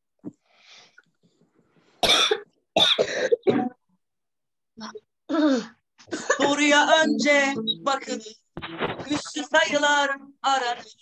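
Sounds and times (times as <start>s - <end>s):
person coughing: 2.0s - 3.7s.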